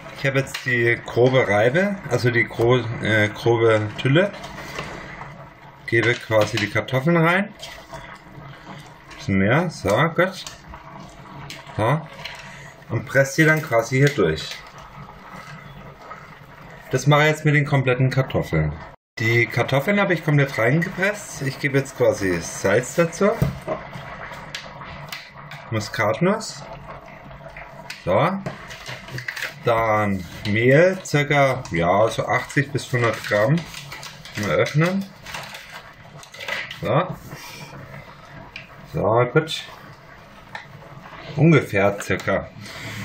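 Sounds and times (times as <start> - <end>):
paper crinkle: 32.4 - 36.8.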